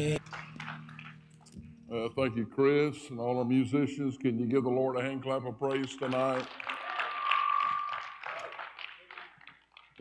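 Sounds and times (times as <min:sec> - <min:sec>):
congregation applauding: 0:00.0 - 0:01.6, 0:05.6 - 0:10.0.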